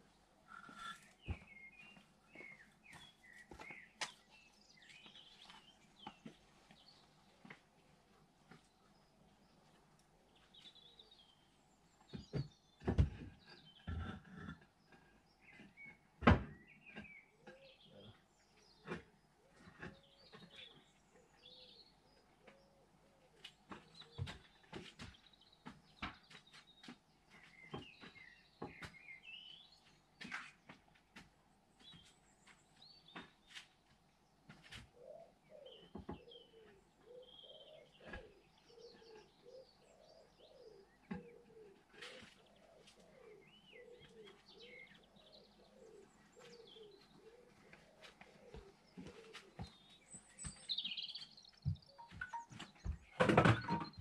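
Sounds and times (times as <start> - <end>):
small birds chirping: 0.0 - 54.0
pigeon cooing: 45.6 - 49.7.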